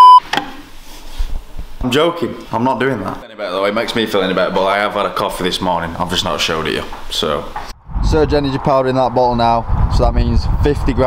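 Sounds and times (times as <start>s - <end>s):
loud test-tone beep: 0.0s - 0.2s
man speaking: 1.8s - 11.0s.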